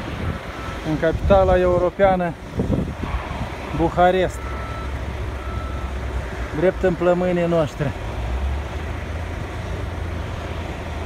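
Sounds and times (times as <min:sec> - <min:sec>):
road noise hiss: 0:00.0 - 0:11.0
vehicle engines rumbling: 0:00.0 - 0:11.0.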